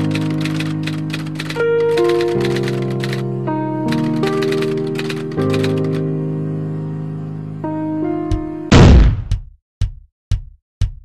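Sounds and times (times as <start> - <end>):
rapid clicking: 0.0 - 3.2, 3.9 - 6.0.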